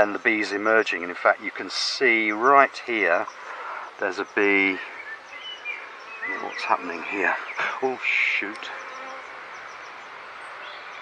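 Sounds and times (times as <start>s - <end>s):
honeybees buzzing: 0.0s - 10.6s.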